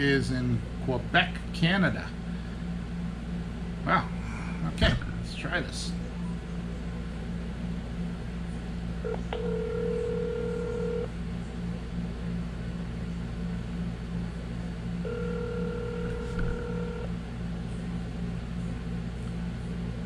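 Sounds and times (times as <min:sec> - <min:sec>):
low hum: 0:02.2 - 0:11.9
telephone ringback tone: 0:09.0 - 0:11.1, 0:15.0 - 0:17.1.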